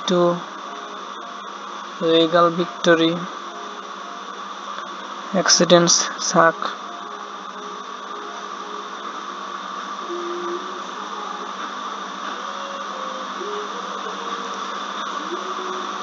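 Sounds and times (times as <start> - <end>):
machine whirring hum: 0.0 - 16.0.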